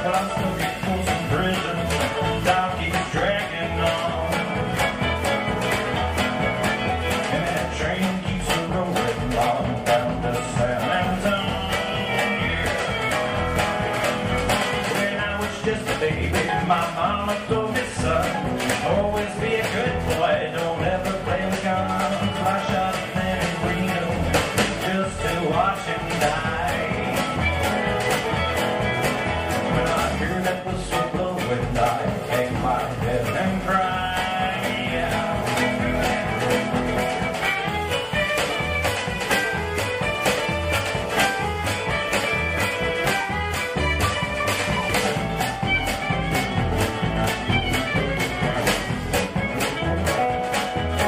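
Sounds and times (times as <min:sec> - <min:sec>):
acoustic guitar: 0:00.0 - 0:51.0
drum beat: 0:00.0 - 0:51.0
fiddle: 0:00.0 - 0:51.0
mandolin: 0:00.0 - 0:51.0
upright bass: 0:00.0 - 0:51.0.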